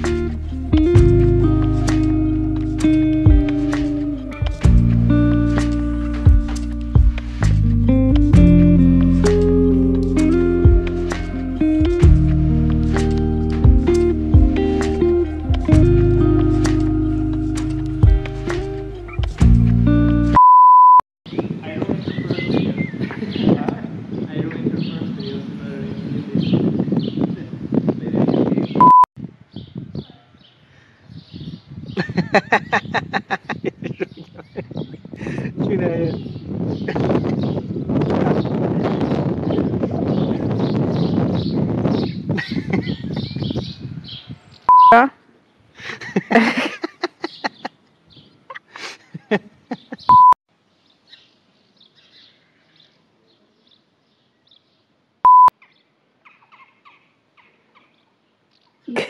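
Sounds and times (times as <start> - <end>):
electronic beep: 20.4 - 21.0, 28.8 - 29.1, 44.7 - 45.0, 50.1 - 50.4, 55.3 - 55.5
noisy outdoor jumble: 21.3 - 31.1, 32.0 - 59.0
faint birds chirping: 21.3 - 59.0
faint bird chirps: 47.2 - 48.6.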